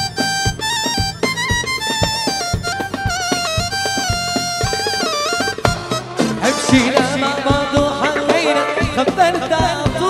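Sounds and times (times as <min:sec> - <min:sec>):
ornamented lead melody: 0:00.0 - 0:10.0
quick percussion beat: 0:00.0 - 0:10.0.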